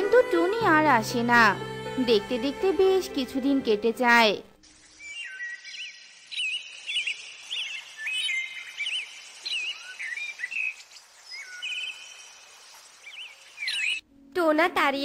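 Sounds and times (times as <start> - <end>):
birds chirping and whistling: 4.8 - 14.0
faint steady hiss: 5.8 - 13.7.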